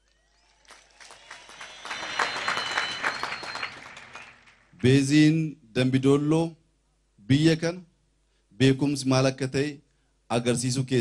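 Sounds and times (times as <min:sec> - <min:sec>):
crowd applauding: 0:00.0 - 0:04.9.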